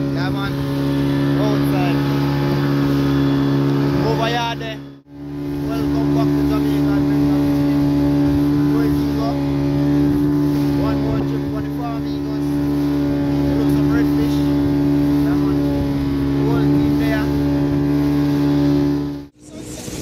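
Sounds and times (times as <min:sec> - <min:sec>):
boat engine and spray: 0:00.0 - 0:20.0
outboard motor droning: 0:00.0 - 0:20.0
wind: 0:00.0 - 0:20.0.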